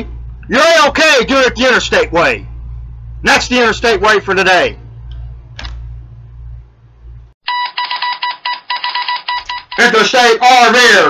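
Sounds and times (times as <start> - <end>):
low hum: 0.0 - 7.4
ringing electronic beeps: 7.5 - 9.9.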